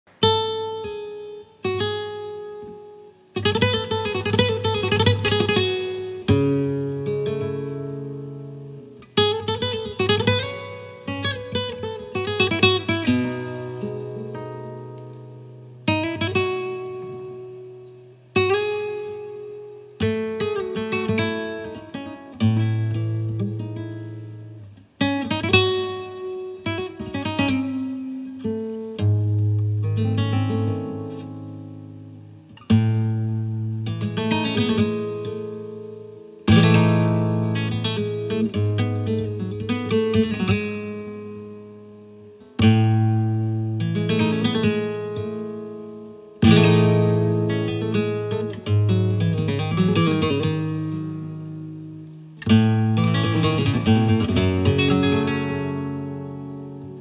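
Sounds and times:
flamenco guitar fingerstyle: 0:00.1 - 0:57.0.

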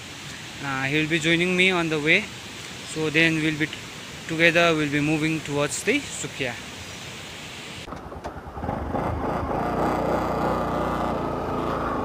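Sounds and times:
motorcycle engine running: 0:08.0 - 0:12.0.

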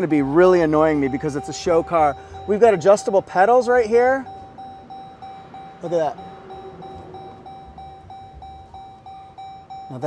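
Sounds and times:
car warning chime beeping: 0:00.0 - 0:10.0.

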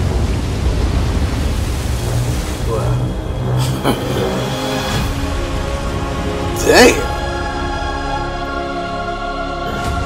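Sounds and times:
deep rumble: 0:00.0 - 0:06.4.

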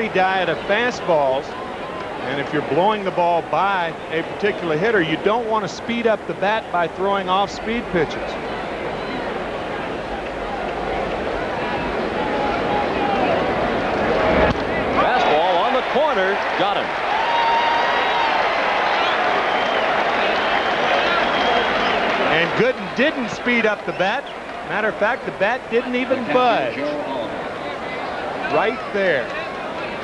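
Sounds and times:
crowd cheering and applauding: 0:10.1 - 0:24.9.

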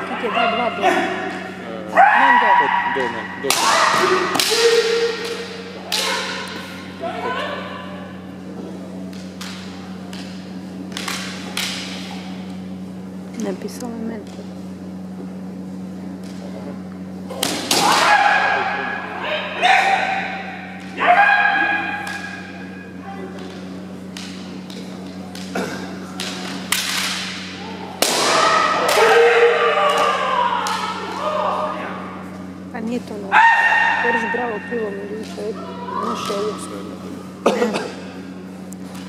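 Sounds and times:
fighters shouting: 0:00.0 - 0:08.2, 0:17.7 - 0:23.5, 0:27.6 - 0:32.2, 0:33.3 - 0:34.7, 0:35.3 - 0:36.8
steady low hum: 0:00.0 - 0:39.0
person shouting: 0:01.9 - 0:05.2, 0:05.9 - 0:08.0, 0:21.0 - 0:22.0, 0:35.6 - 0:36.6
bamboo sword strikes cracking: 0:28.0 - 0:29.1.

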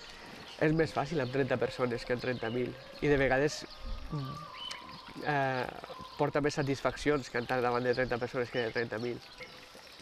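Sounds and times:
man hesitating vocally: 0:04.1 - 0:04.6.

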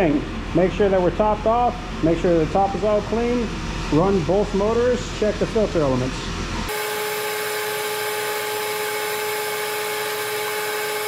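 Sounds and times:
electric motor and pump whine: 0:00.0 - 0:11.0.

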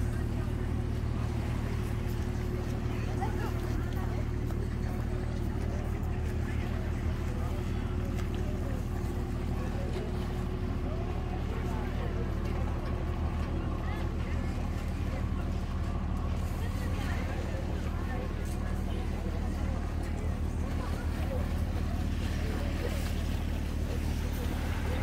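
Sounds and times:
boat engine running: 0:00.0 - 0:25.0.

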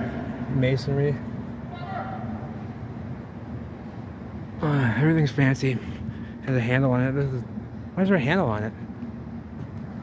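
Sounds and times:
urban background rumble and hum: 0:00.0 - 0:10.0.

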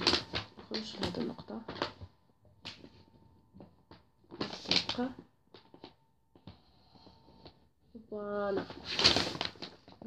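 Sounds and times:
plastic curve rustling on paper: 0:00.0 - 0:02.1.

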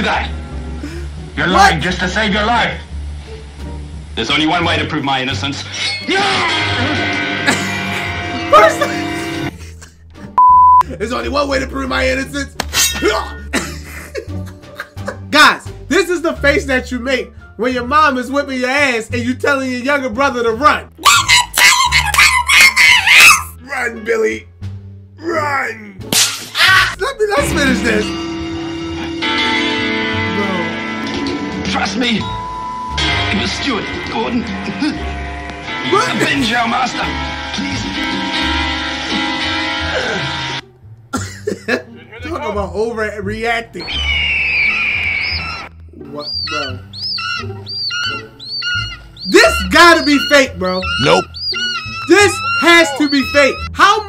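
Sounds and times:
man screeching and wailing: 0:05.8 - 0:07.1, 0:43.8 - 0:54.0.

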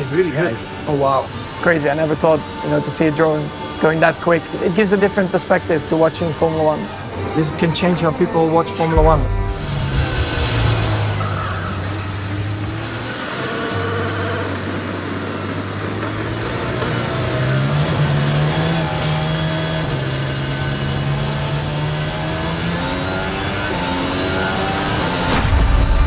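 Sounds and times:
racing car engine at speed: 0:08.6 - 0:25.7.

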